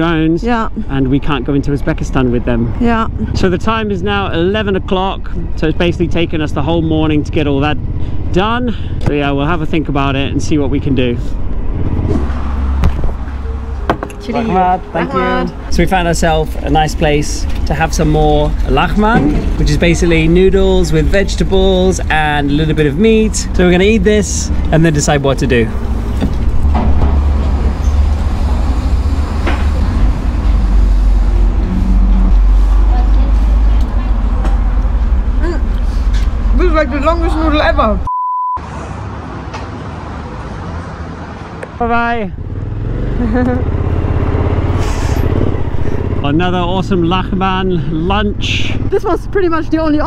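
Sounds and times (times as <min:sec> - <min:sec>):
low outdoor rumble: 0:00.0 - 0:38.1, 0:41.8 - 0:50.0.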